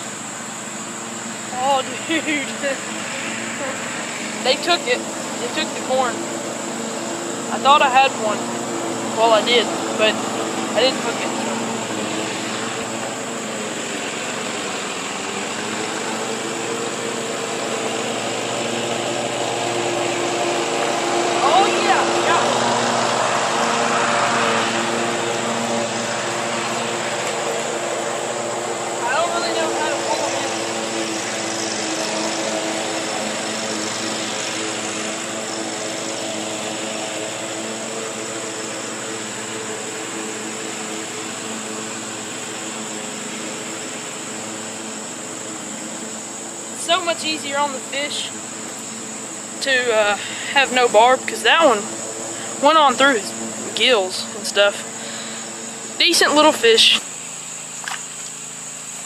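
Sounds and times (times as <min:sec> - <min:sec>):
lawn mower engine running: 0:00.0 - 0:59.0.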